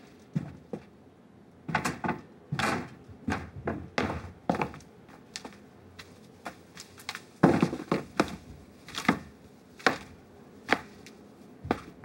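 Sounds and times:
hard-soled footsteps on hard floor: 0.4s - 0.9s, 1.7s - 10.1s, 11.6s - 12.0s.

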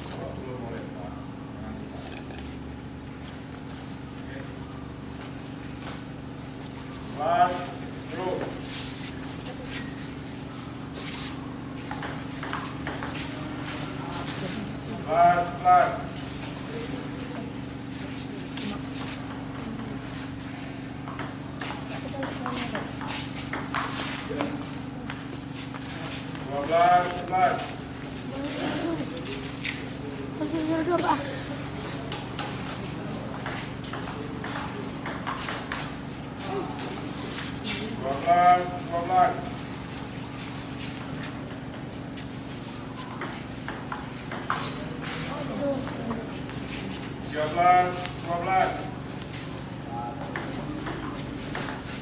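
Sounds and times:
steady low hum: 0.0s - 52.0s
ping-pong ball hitting paddles: 11.8s - 14.5s, 18.9s - 20.0s, 21.0s - 27.6s, 32.0s - 37.1s, 40.9s - 42.0s, 43.0s - 46.8s, 50.1s - 52.0s.

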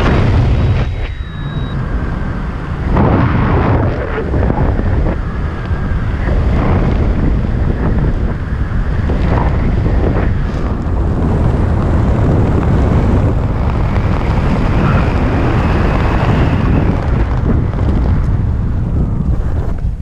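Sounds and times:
gusty wind rush on microphone: 0.0s - 20.0s.

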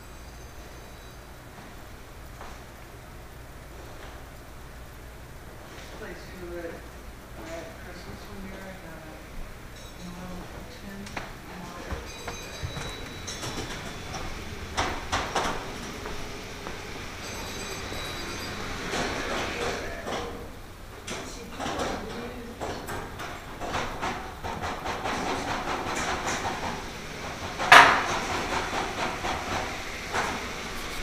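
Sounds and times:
model trains clattering on track: 11.9s - 31.0s.

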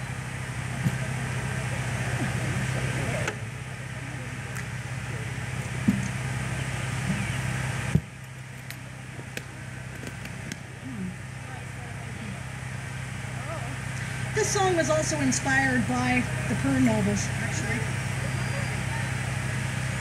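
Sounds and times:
faint murmured voices: 0.0s - 20.0s
steady low hum: 0.0s - 20.0s.

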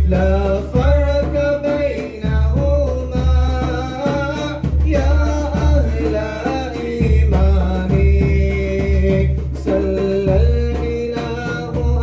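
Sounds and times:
heavy low beat: 0.0s - 12.0s
person singing devotional poem: 0.0s - 12.0s.

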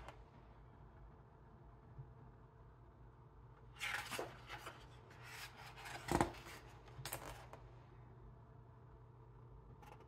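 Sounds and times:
book page rustling: 3.8s - 7.6s.

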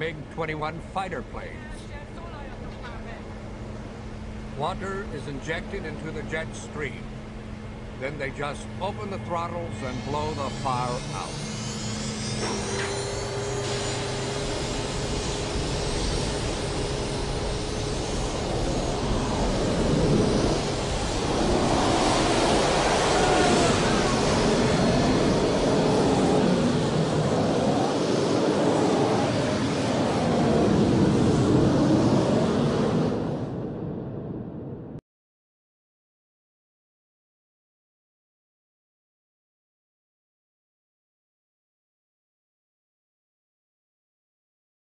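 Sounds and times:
thin steady whine: 0.0s - 33.8s
jet engines roaring: 0.0s - 35.0s.

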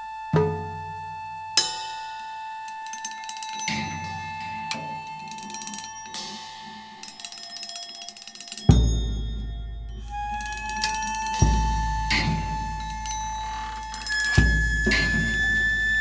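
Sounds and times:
steady high tone: 0.0s - 16.0s
sharp percussion strikes: 0.4s - 16.0s.

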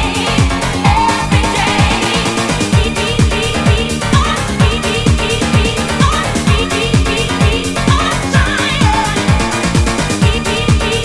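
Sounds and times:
techno kick drum beat: 0.0s - 11.0s.

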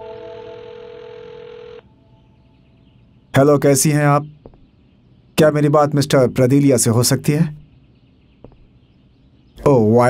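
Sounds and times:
telephone ringback tone: 0.0s - 1.9s.

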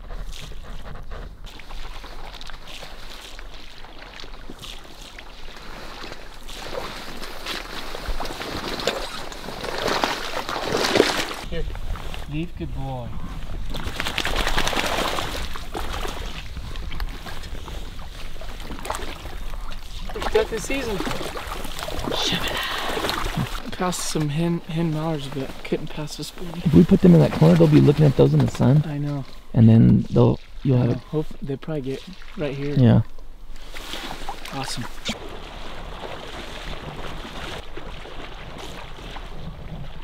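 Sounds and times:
dog swimming through water: 0.0s - 12.2s, 13.2s - 23.7s, 33.6s - 40.0s.

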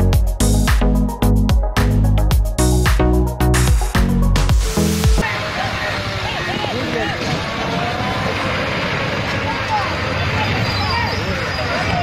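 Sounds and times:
road and vehicle roar: 5.2s - 12.0s.

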